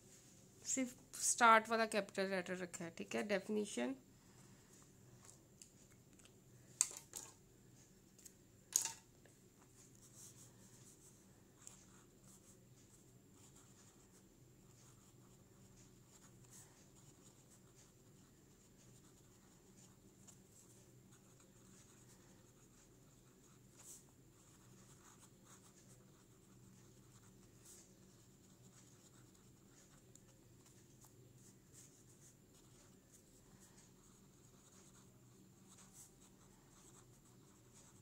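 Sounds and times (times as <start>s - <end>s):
steady low hum: 0.0s - 38.0s
pen scratching on paper: 9.6s - 38.0s.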